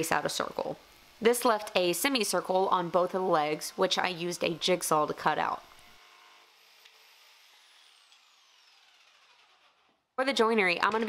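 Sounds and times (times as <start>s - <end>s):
jigsaw motor winding down: 1.6s - 10.0s.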